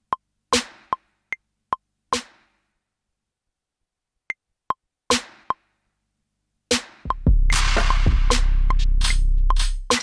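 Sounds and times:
drum machine clicks: 0:00.0 - 0:02.6, 0:04.7 - 0:05.7, 0:06.7 - 0:10.0.

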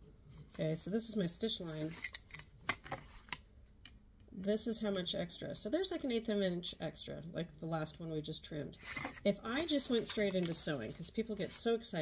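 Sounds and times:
paper handling: 0:08.8 - 0:11.7.

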